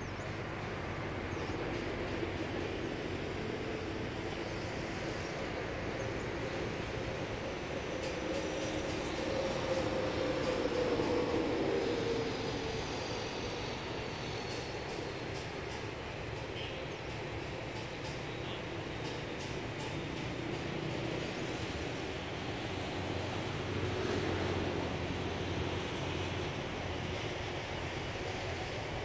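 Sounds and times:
engine droning passing by: 20.4s - 29.0s.

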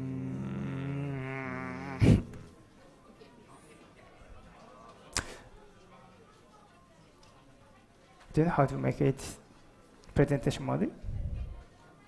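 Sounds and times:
man humming: 0.0s - 2.5s.

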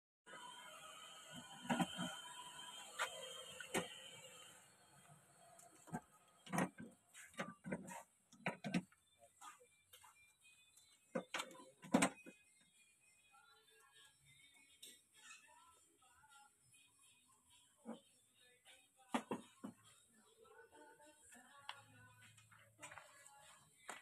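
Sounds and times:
faint steady tones: 0.3s - 24.0s.

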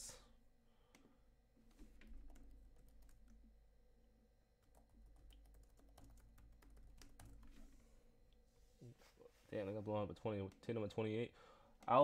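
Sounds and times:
typing on a keyboard: 4.6s - 7.5s.

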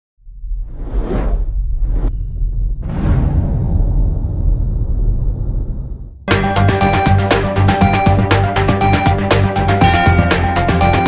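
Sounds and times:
deep rumble: 0.2s - 6.3s
whoosh: 0.5s - 6.2s.

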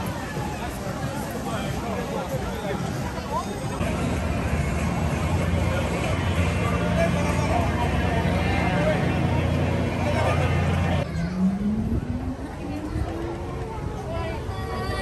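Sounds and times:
crowd chatter: 0.0s - 15.0s
rising whine: 3.8s - 13.8s.

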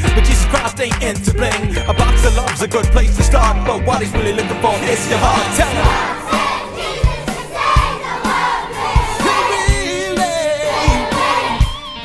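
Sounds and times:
children singing and shouting: 0.0s - 12.0s
steady drum beat: 0.0s - 12.0s
upbeat song: 0.0s - 12.0s.

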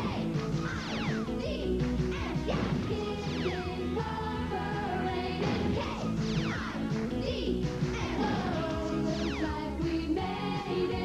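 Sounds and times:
upbeat pop theme music: 0.0s - 11.0s
cartoon sweep effects: 0.6s - 1.5s.

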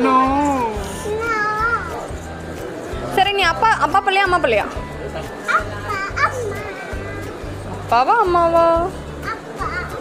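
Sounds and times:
background music: 0.0s - 10.0s
toddler's high-pitched vocal sound: 1.1s - 2.0s, 5.5s - 7.4s.

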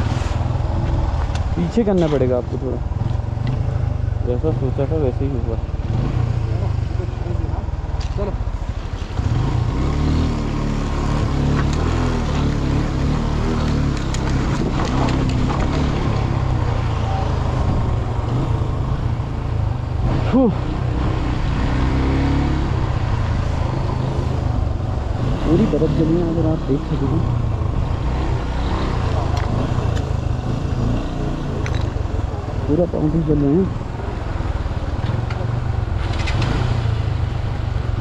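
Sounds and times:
motorcycle engine at low revs: 0.0s - 38.0s.

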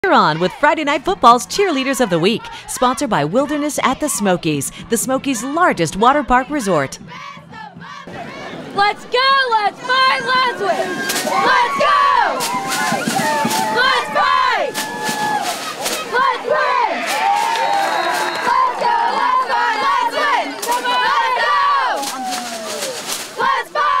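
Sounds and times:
cheerleaders shouting cheers: 1.6s - 4.6s, 6.2s - 24.0s.

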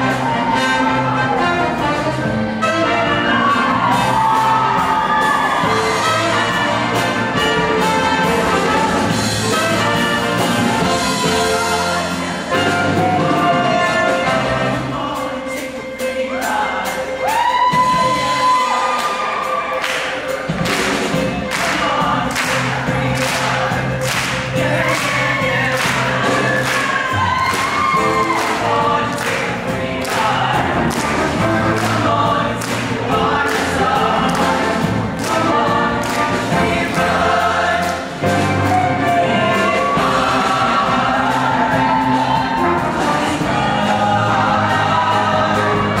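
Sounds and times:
choir singing with band: 0.0s - 46.0s
steady drum beat: 0.0s - 46.0s.

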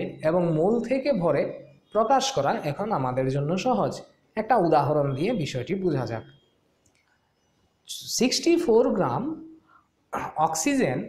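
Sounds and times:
person speaking: 10.2s - 11.0s.

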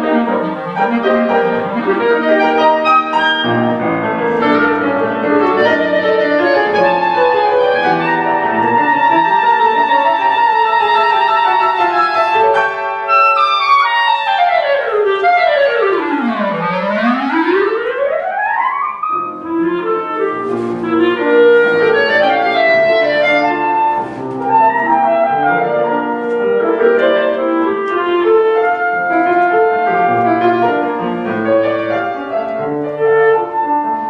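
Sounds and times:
clarinet playing: 0.0s - 34.0s
piano accompaniment: 0.0s - 34.0s.

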